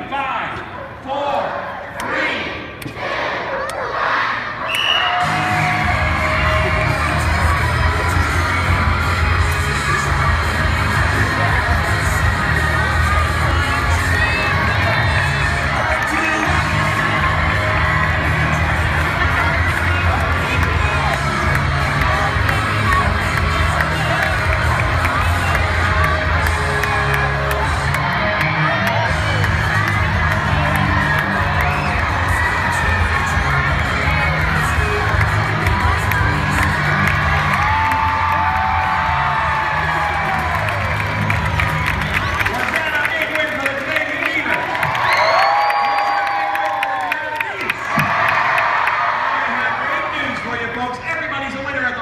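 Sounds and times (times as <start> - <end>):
arena crowd cheering and shouting: 0.0 - 52.0.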